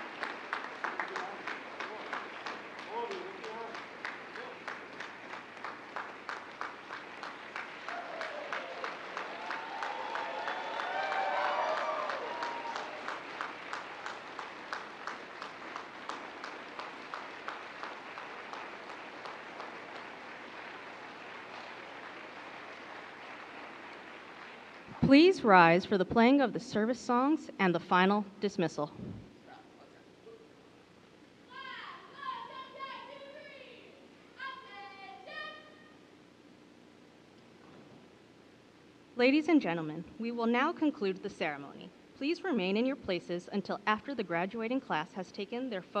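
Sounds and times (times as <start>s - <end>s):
audience applauding: 0.0s - 25.2s
whoops and cheers: 7.8s - 13.2s.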